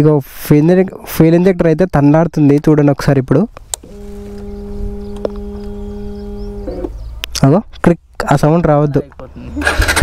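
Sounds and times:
fuel pump motor humming: 3.7 - 7.0.

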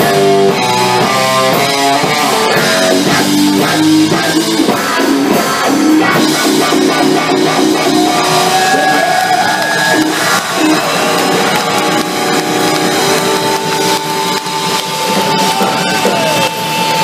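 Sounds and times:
bass: 0.0 - 17.0
drums: 0.0 - 17.0
electric guitar bending notes: 0.0 - 17.0.

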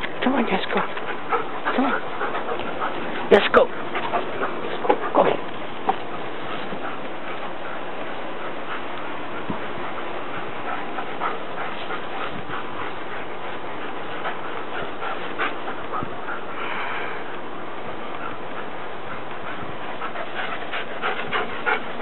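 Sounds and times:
background hiss: 0.0 - 22.0.

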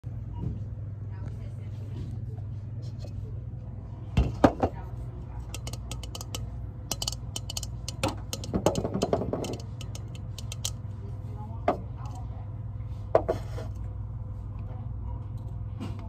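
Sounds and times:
steady low hum: 0.0 - 16.0
fingernails tapping on glass: 5.5 - 10.8.

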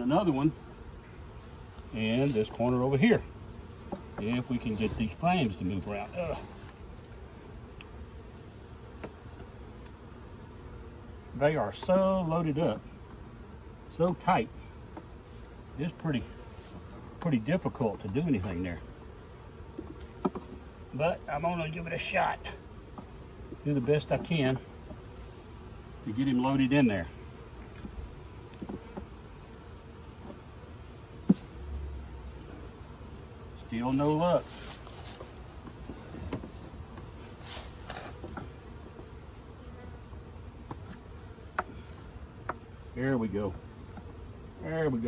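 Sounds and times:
bees buzzing: 0.0 - 45.0
honeybees humming: 0.0 - 45.0
light knocks and scrapes: 19.7 - 20.7, 27.6 - 29.2, 31.2 - 31.6, 34.0 - 39.1.

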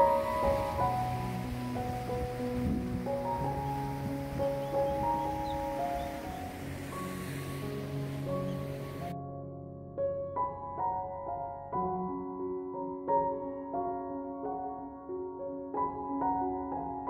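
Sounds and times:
sea surf: 0.0 - 9.1
wind: 0.0 - 9.2
soft instrumental music: 0.0 - 17.0.

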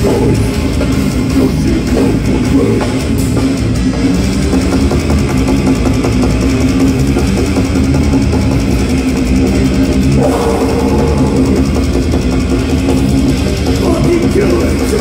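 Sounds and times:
distorted electric guitars: 0.0 - 15.0
drum kit: 0.0 - 15.0.

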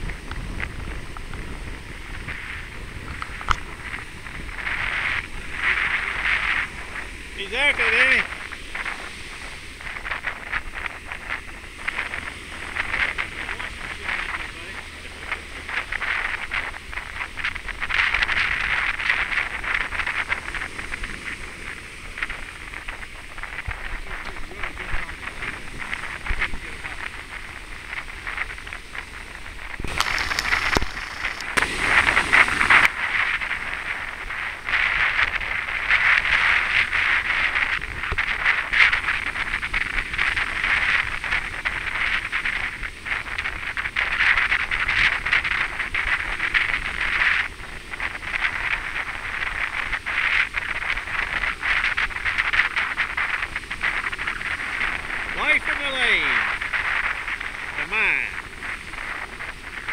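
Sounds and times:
ocean surf breaking: 0.0 - 59.9.

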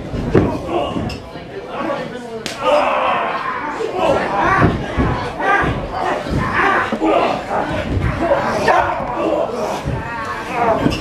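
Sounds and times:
voices shouting: 2.5 - 11.0.

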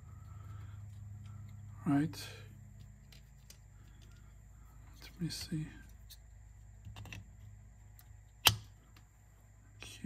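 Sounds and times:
faint rustling of small parts: 0.0 - 10.0.

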